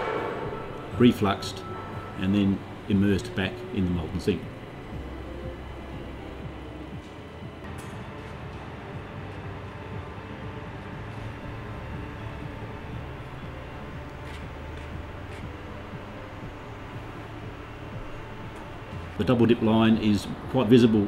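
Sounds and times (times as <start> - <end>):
low industrial hum: 0.0 - 21.0.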